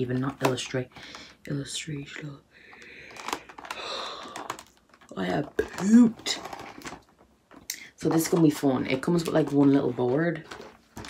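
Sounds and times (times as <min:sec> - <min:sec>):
cardboard box crinkling: 0:03.1 - 0:07.3, 0:08.0 - 0:11.0.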